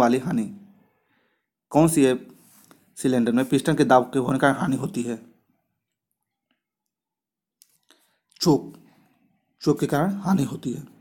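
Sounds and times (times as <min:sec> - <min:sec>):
man speaking: 0:00.0 - 0:00.7, 0:01.7 - 0:02.4, 0:03.0 - 0:05.4, 0:08.4 - 0:08.9, 0:09.6 - 0:11.0.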